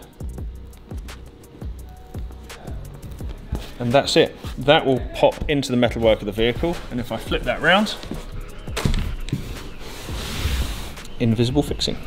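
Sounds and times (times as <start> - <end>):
carpet rubbing: 0.9 - 12.0.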